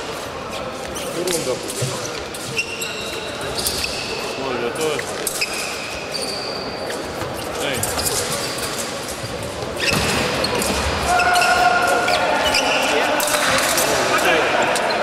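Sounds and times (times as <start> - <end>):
shoe squeaks: 0.5 - 13.2.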